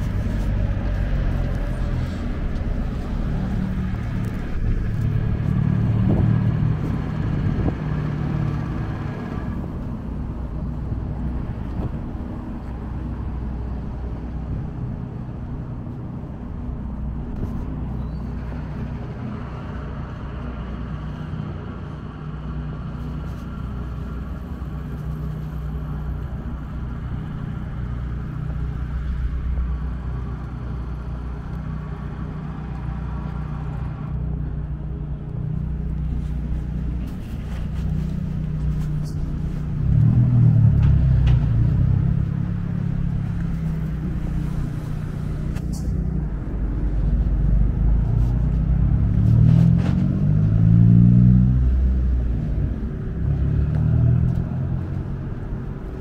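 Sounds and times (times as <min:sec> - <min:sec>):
vehicles accelerating loudly: 0:00.0 - 0:09.8, 0:39.4 - 0:56.0
cars and trucks passing: 0:00.0 - 0:56.0.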